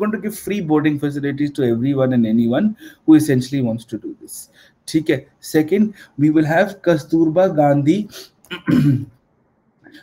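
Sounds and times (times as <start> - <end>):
man clearing throat: 8.5 - 9.2.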